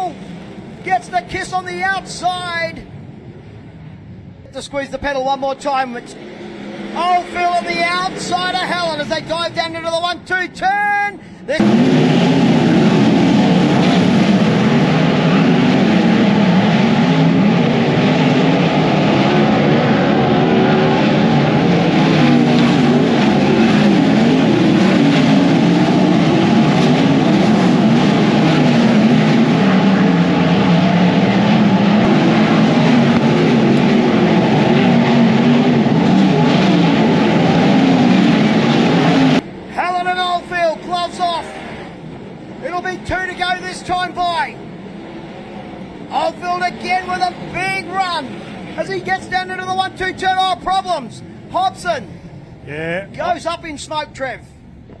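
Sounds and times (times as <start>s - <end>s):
race car engines droning: 0.0s - 55.0s
man talking: 0.8s - 2.9s, 4.4s - 6.2s, 6.9s - 11.6s, 39.7s - 41.6s, 42.6s - 44.6s, 46.1s - 54.6s.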